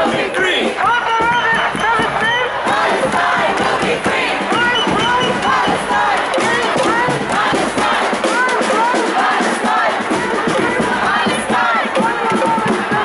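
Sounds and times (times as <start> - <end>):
crowd shouting: 0.0 - 13.0.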